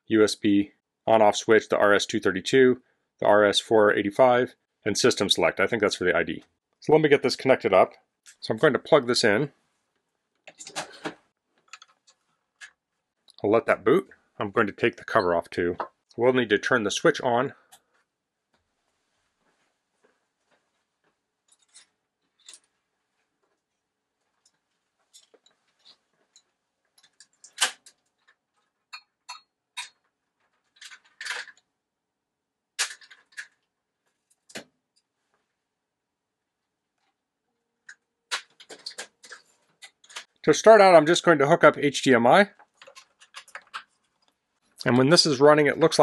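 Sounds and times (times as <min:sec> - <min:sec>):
cable being handled: 0:17.7 - 0:28.8, 0:37.9 - 0:40.4, 0:42.6 - 0:44.4.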